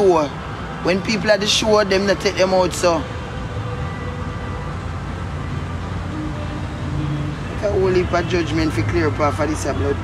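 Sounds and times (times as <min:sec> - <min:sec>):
motor vehicle rumble: 0:00.0 - 0:10.0.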